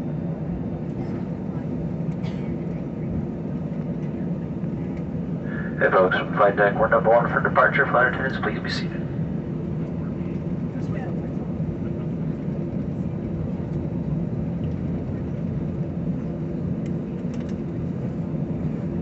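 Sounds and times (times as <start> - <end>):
jet engines rumbling in cabin: 0.0 - 19.0.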